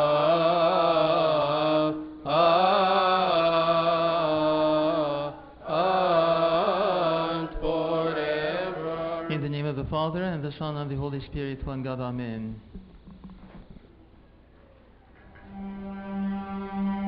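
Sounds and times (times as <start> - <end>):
man chanting: 0.0 - 12.6
man speaking: 9.3 - 12.7.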